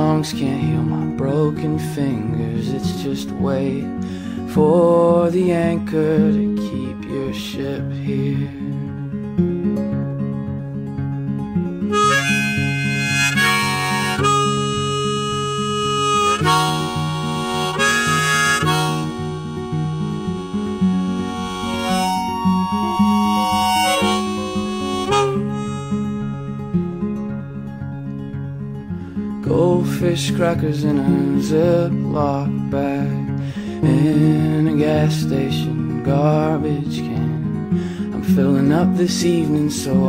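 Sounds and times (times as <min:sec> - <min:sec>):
strummed acoustic guitar: 0:00.0 - 0:40.0
harmonica solo: 0:11.9 - 0:27.3.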